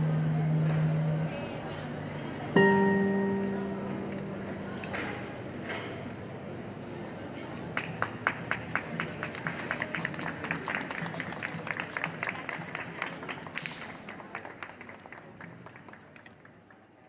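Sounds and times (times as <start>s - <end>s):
small crowd clapping: 7.6s - 17.0s.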